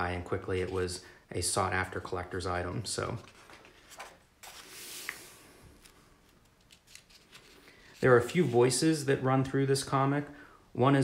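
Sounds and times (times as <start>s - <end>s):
paper pages rustling: 3.0s - 8.8s.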